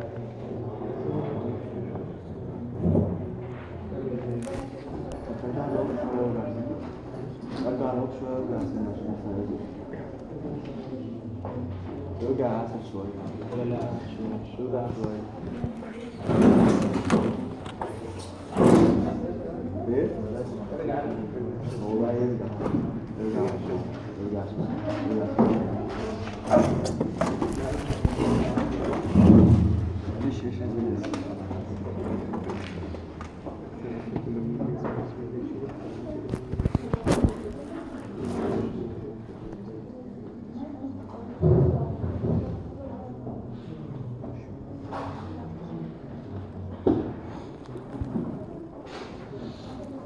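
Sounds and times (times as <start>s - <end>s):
room noise: 0.0s - 50.0s.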